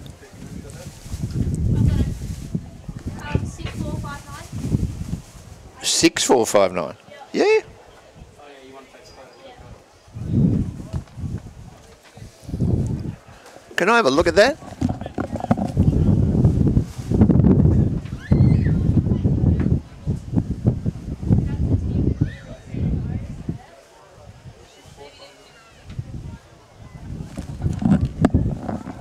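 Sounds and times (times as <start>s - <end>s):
people talking indistinctly: 5.7s - 16.2s
horses galloping on turf: 13.8s - 18.0s, 27.2s - 29.0s.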